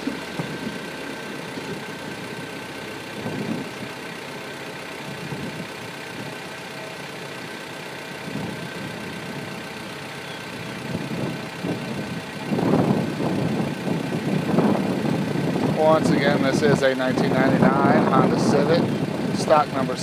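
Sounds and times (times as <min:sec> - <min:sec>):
car engine idling: 0:00.0 - 0:20.0
loud rough noise: 0:00.0 - 0:20.0.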